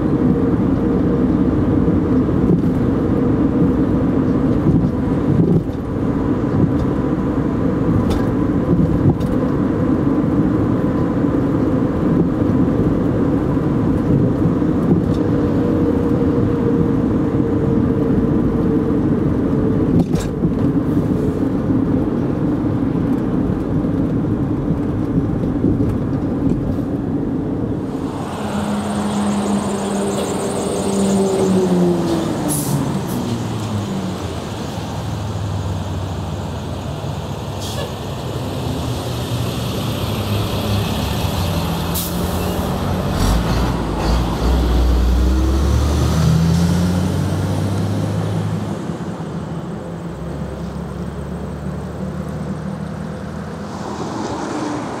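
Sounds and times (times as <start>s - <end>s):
car road and engine noise: 0.0s - 55.0s
vehicles passing: 0.0s - 55.0s
deep engine passing: 27.3s - 55.0s.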